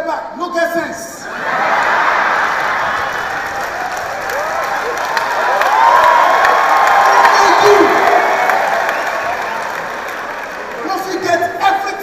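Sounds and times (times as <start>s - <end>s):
audience laughing: 1.2s - 4.0s
people cheering: 1.2s - 12.0s
audience applauding: 1.3s - 12.0s.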